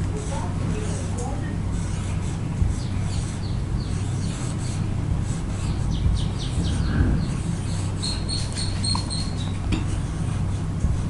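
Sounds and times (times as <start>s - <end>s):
low hum: 0.0s - 11.0s
marker squeaking on whiteboard: 0.3s - 10.8s
marker rubbing stroke: 1.8s - 10.3s.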